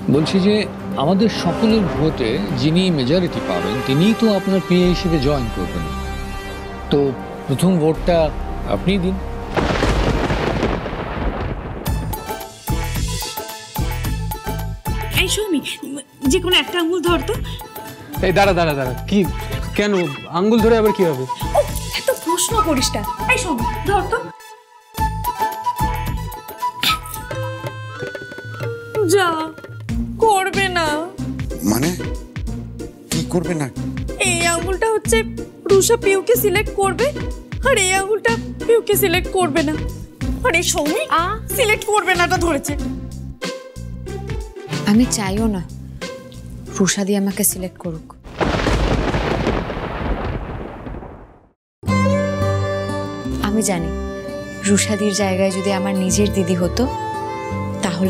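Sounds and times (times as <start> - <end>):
background music: 0.0 - 48.4, 51.8 - 58.0
thunder-like rumbling crash: 9.4 - 12.8, 48.2 - 51.6
woman speaking: 44.8 - 45.7, 46.7 - 48.1, 54.6 - 56.9.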